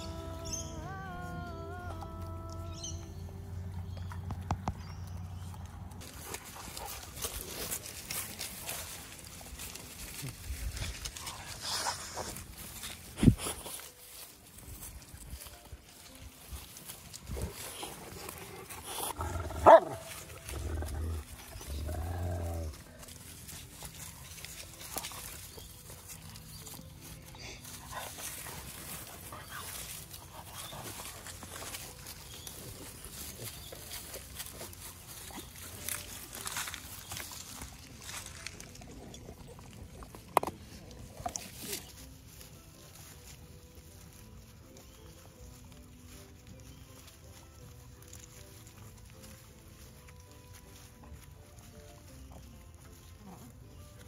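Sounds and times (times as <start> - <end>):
rustling: 3.6 - 54.0
dog growling: 18.6 - 22.8
dog barking: 19.6 - 20.0.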